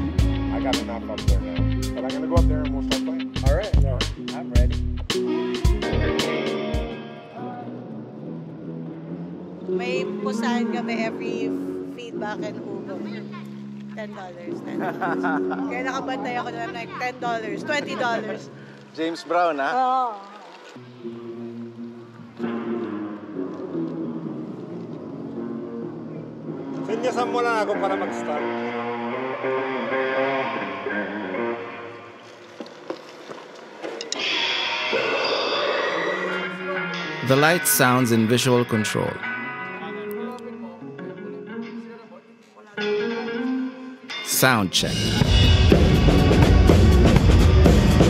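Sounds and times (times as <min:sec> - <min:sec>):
sustained guitar and bass notes: 0:00.0 - 0:09.5, 0:36.4 - 0:39.8, 0:42.8 - 0:48.0
electric guitar chords: 0:00.0 - 0:12.4, 0:20.8 - 0:32.2, 0:42.8 - 0:48.0
band playing in a hall: 0:44.9 - 0:48.0.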